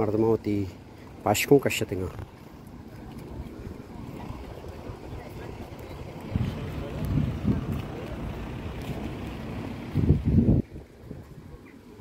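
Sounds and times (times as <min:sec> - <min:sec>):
people talking faintly: 0:01.7 - 0:10.0
wind buffeting microphone: 0:02.1 - 0:12.0.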